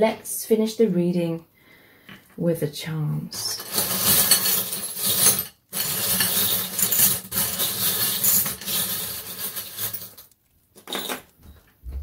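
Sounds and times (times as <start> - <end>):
charms jingling in glass bowl: 3.5 - 10.3.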